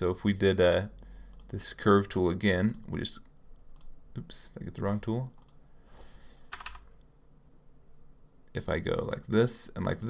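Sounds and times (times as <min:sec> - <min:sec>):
keyboard key presses: 0:06.5 - 0:06.9.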